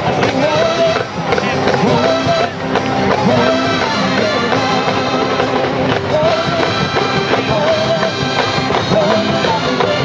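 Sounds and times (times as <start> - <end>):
brass and saxophones melody: 0.0 - 10.0
snare and bass drum beats: 0.0 - 10.0.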